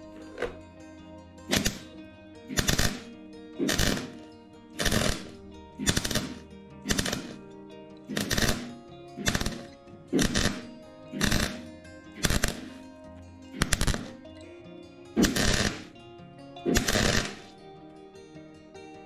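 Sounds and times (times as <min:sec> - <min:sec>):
background music: 0:00.0 - 0:19.0
welder crackling: 0:01.5 - 0:14.3, 0:15.2 - 0:16.0, 0:16.7 - 0:17.5.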